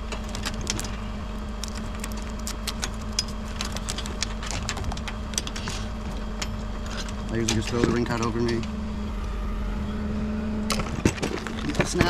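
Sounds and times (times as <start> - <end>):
tape clicks and crackles: 0.0 - 8.7
truck engine humming: 0.0 - 12.0.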